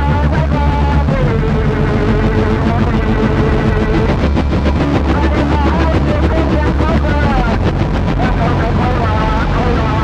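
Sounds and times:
person singing: 0.0 - 7.6
industrial rock band playing: 0.0 - 10.0
pulsing bass: 0.0 - 10.0.

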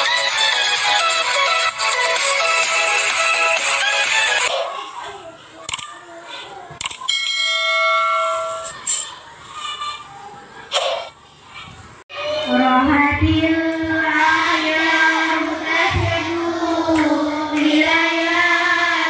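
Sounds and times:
bell-like chime: 7.1 - 8.8
children singing into a microphone: 12.1 - 19.0.

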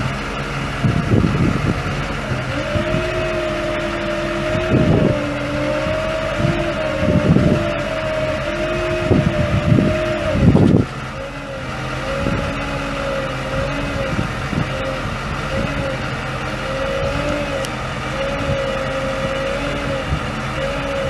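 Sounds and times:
diesel truck engine whining: 0.0 - 21.0
wind buffeting microphone: 0.0 - 21.0.

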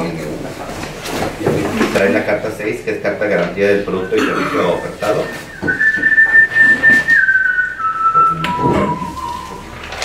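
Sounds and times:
high whistling tone: 3.9 - 9.8.

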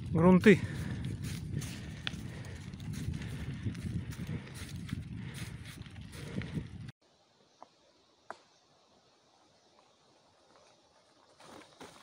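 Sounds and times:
bicycle tyres crunching on gravel: 0.0 - 6.9, 9.9 - 12.0
bike and bags rattling: 0.0 - 6.9.

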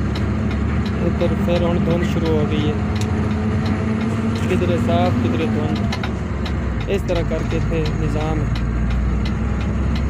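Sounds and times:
vehicle engine and road drone: 0.0 - 10.0
man talking: 1.0 - 2.8, 4.4 - 5.9, 6.9 - 8.6.

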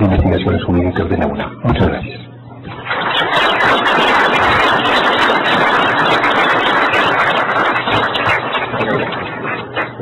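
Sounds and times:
people applauding: 2.7 - 10.0.

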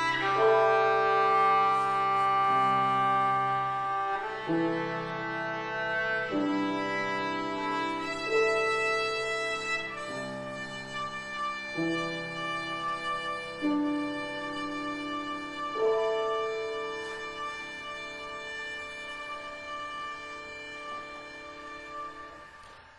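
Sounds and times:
bowed string instrument playing: 0.0 - 22.6.

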